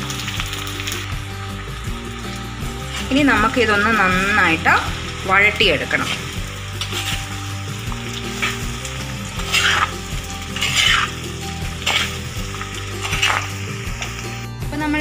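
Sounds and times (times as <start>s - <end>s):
vegetables sizzling in a pan: 0.0s - 15.0s
spatula scraping a pan: 8.3s - 14.2s.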